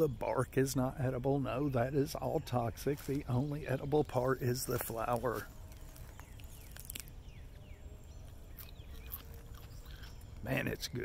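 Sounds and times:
low outdoor rumble: 0:00.0 - 0:11.0
faint bird chirps: 0:01.1 - 0:11.0.

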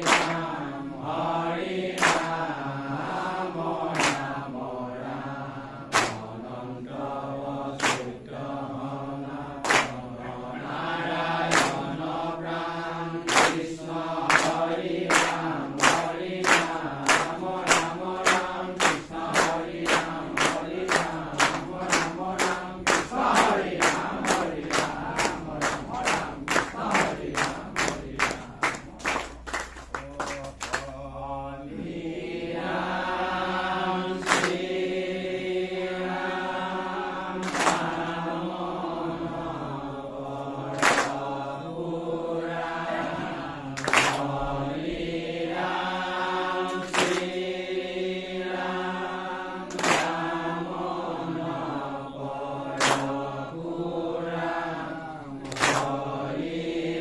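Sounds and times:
hands clapping in time: 0:00.0 - 0:00.7, 0:01.9 - 0:02.5, 0:03.9 - 0:04.3, 0:05.9 - 0:06.4, 0:07.8 - 0:08.2, 0:09.6 - 0:12.0, 0:13.3 - 0:31.0, 0:34.2 - 0:34.7, 0:37.4 - 0:38.1, 0:40.7 - 0:41.3, 0:43.7 - 0:44.4, 0:46.7 - 0:47.4, 0:49.7 - 0:50.2, 0:52.7 - 0:53.3, 0:55.4 - 0:56.0
men chanting together: 0:00.0 - 0:57.0.

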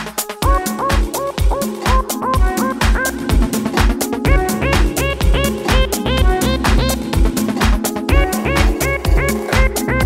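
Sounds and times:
techno kick drum: 0:00.0 - 0:10.0.

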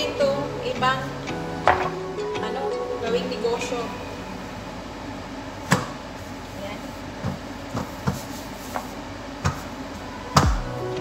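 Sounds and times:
rolling pin knocking on board: 0:01.7 - 0:02.0.

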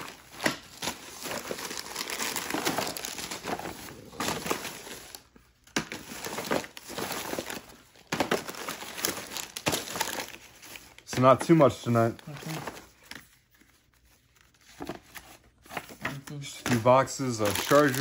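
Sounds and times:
plastic bag crinkling: 0:00.0 - 0:05.2, 0:16.9 - 0:18.0.

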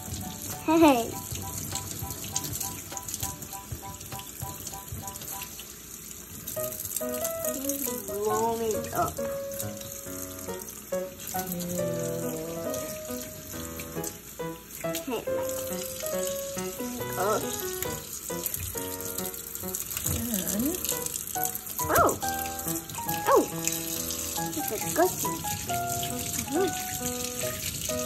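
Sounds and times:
faucet running into a steel sink: 0:00.0 - 0:28.0
background music: 0:07.0 - 0:28.0.

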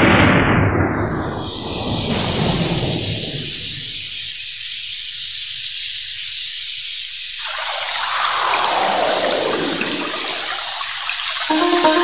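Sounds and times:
rushing noise falling in pitch: 0:11.5 - 0:12.0.

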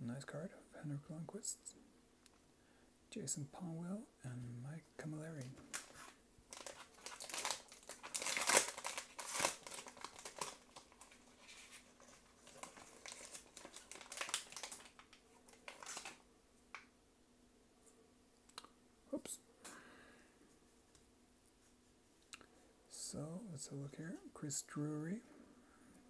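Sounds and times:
plastic wrapper tearing and crinkling: 0:05.4 - 0:16.8.

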